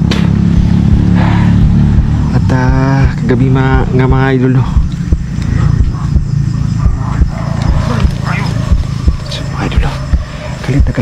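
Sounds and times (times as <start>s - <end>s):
loud low drone: 0.0s - 11.0s.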